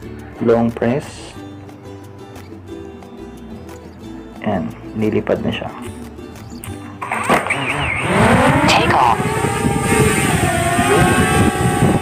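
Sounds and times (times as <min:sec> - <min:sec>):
background music: 0:00.0 - 0:12.0
drone motors whining: 0:06.7 - 0:12.0.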